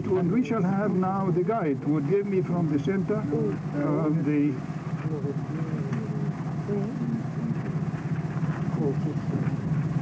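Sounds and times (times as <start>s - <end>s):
steady low hum: 0.0s - 10.0s
murmured speech: 2.8s - 7.9s.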